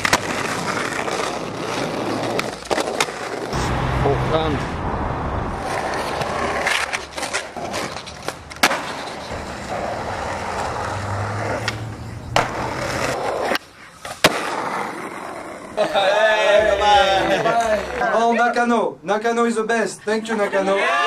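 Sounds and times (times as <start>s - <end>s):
skateboard popping and landing: 0.0s - 3.6s, 5.6s - 15.8s
skateboard wheels rolling on concrete: 0.0s - 18.3s.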